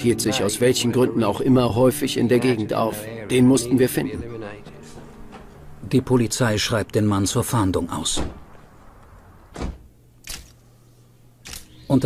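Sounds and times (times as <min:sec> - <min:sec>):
narration: 0:00.0 - 0:08.6, 0:11.6 - 0:12.0.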